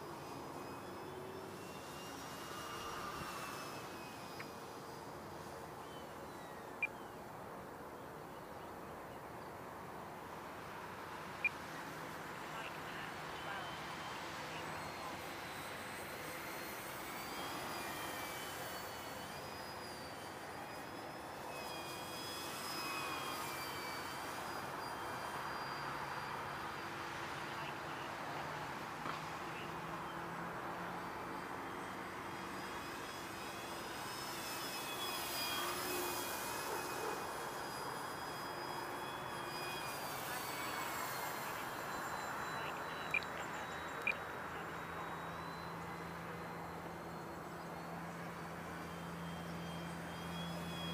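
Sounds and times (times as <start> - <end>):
model plane motor whining: 0.0 - 7.1, 13.1 - 27.4, 30.8 - 50.9.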